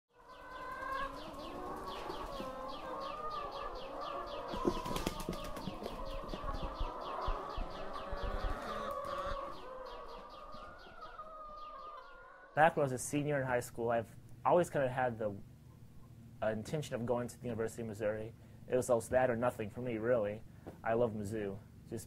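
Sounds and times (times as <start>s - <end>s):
hens calling: 0.2s - 13.6s
wing flapping: 4.5s - 6.4s.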